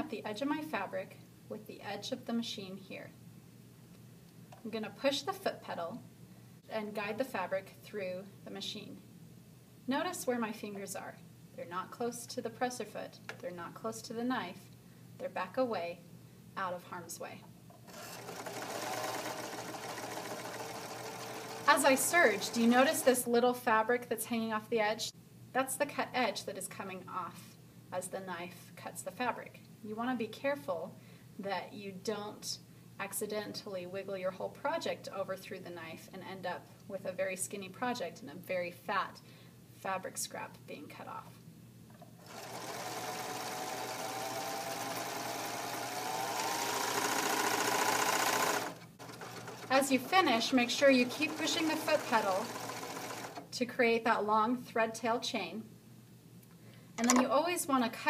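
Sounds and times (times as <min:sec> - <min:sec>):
overlock sewing machine running: 0:17.9 - 0:23.3, 0:42.2 - 0:53.5.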